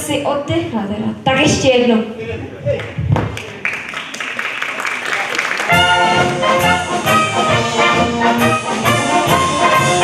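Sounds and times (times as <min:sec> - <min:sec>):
audience applauding: 0:02.8 - 0:06.8.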